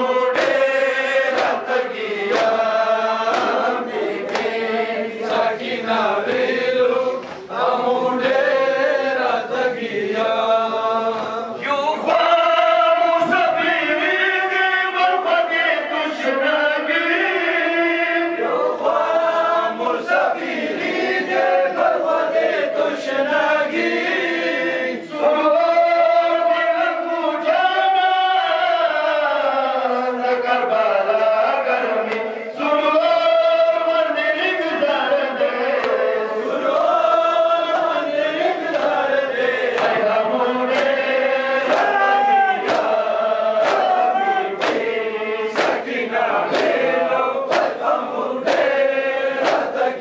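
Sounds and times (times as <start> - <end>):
men chanting a lament: 0.0 - 50.0
hand-on-chest strikes: 0.3 - 1.7, 3.3 - 4.6, 41.7 - 43.0, 43.6 - 44.9, 45.6 - 45.9, 47.5 - 47.8, 49.4 - 49.8.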